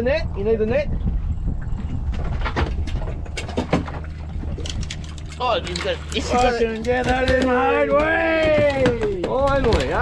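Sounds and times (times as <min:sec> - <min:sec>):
steady low rumble: 0:00.0 - 0:08.6
fish splashing at surface: 0:03.5 - 0:07.5.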